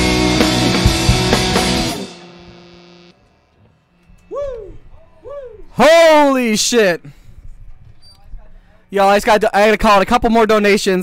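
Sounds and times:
electric guitar chord ringing: 0.0s - 4.3s
man whooping: 4.2s - 6.3s.

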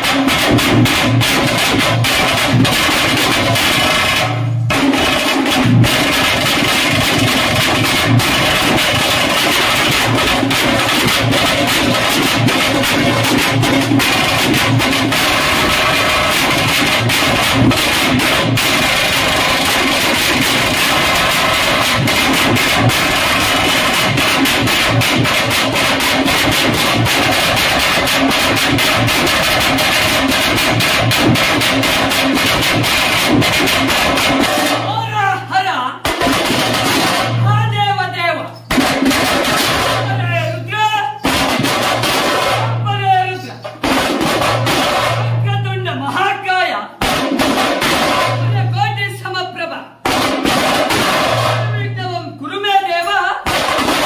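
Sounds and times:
drums beaten with sticks: 0.0s - 54.0s.

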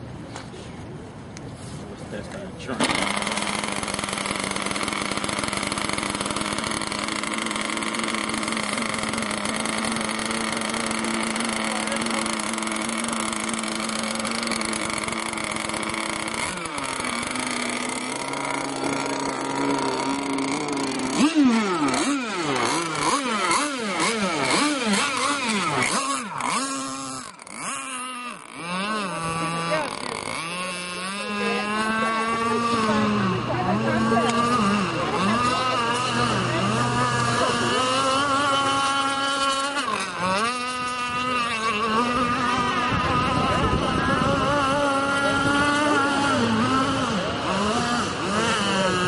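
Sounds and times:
model boat engine revving: 2.5s - 49.0s.

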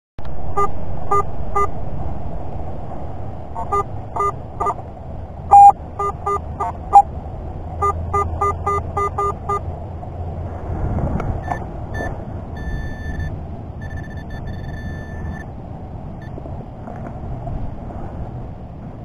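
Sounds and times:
metal detector beeps: 0.5s - 1.7s, 3.6s - 4.8s, 5.5s - 7.1s, 7.8s - 9.6s, 11.4s - 15.5s
pinpointer steady high tone: 0.5s - 1.8s, 3.6s - 4.8s, 5.5s - 7.1s, 7.8s - 9.7s, 11.4s - 15.6s.

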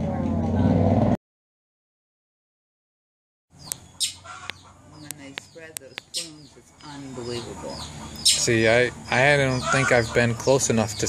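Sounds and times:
sharp clicks: 3.6s - 6.3s
short bird calls: 3.6s - 10.9s.

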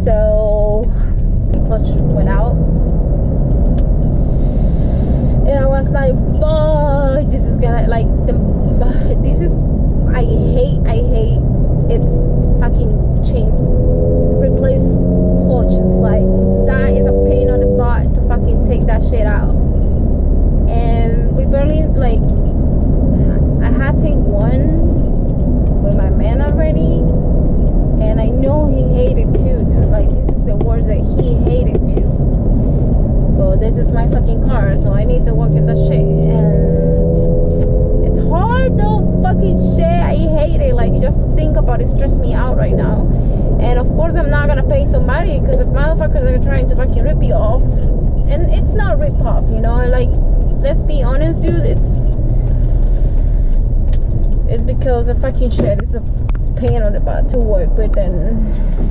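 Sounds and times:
voice: 0.0s - 2.6s, 4.4s - 13.6s, 14.4s - 19.6s, 20.7s - 22.3s, 23.2s - 24.9s, 25.8s - 27.1s, 28.0s - 32.2s, 33.4s - 36.8s, 38.0s - 52.2s, 54.5s - 56.0s, 56.6s - 58.7s
car engine and tyres rumbling: 0.0s - 58.9s
person talking: 5.4s - 13.6s, 20.7s - 22.3s, 23.2s - 24.9s, 25.8s - 27.1s, 28.0s - 32.1s, 33.4s - 36.7s, 38.0s - 52.2s, 54.5s - 56.0s, 56.6s - 58.5s.

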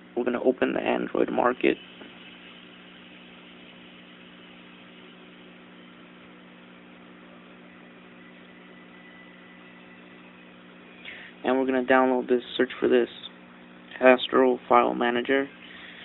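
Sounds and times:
constant hiss: 0.0s - 16.0s
low hum: 0.0s - 16.0s.

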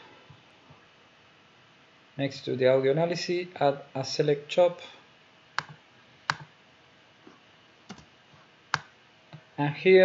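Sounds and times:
computer mouse clicks: 5.6s - 6.5s, 7.9s - 8.1s.

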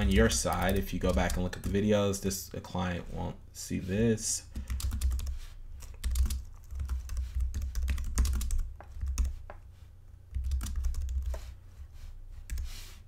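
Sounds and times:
typing on computer keyboard: 4.6s - 9.4s, 10.3s - 11.4s.

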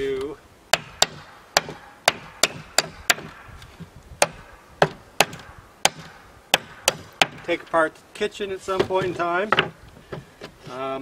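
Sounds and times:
hammer striking wooden board: 0.7s - 3.5s, 4.2s - 7.5s.

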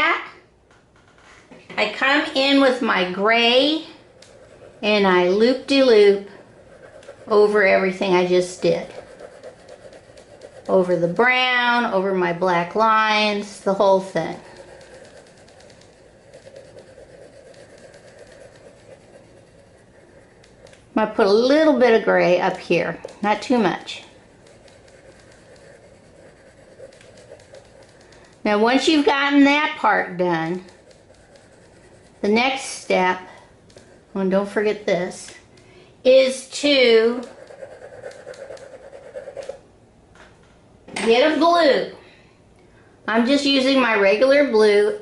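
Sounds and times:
crayon scratching on paper: 2.0s - 12.0s, 13.0s - 33.1s, 36.6s - 39.6s.

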